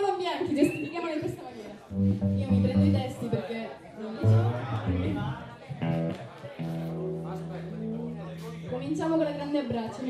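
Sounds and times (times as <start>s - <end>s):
electric guitar chords: 1.9s - 3.2s, 4.2s - 9.5s.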